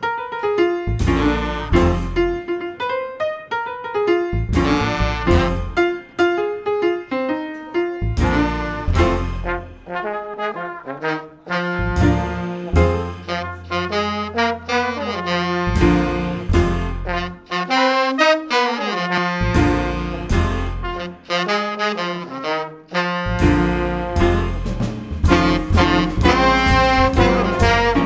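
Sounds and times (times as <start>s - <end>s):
piano single notes: 0.0s - 28.0s
jazz band chord: 0.1s - 28.0s
drums: 0.9s - 2.4s, 4.4s - 5.9s, 8.1s - 9.7s, 11.8s - 13.4s, 15.7s - 17.2s, 19.5s - 20.9s, 23.3s - 28.0s
trombone: 0.9s - 2.4s, 4.4s - 6.0s, 8.0s - 28.0s
upright bass: 0.9s - 2.5s, 4.4s - 5.9s, 8.0s - 9.9s, 11.6s - 17.5s, 19.2s - 21.0s, 23.2s - 28.0s
trumpet: 1.0s - 2.4s, 4.5s - 6.0s, 8.2s - 28.0s
tenor saxophone: 4.6s - 5.9s, 8.2s - 24.4s, 25.3s - 28.0s.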